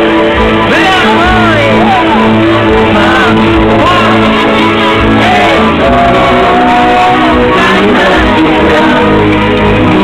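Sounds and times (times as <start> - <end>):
pop-rock band playing loudly: 0.0 - 10.0.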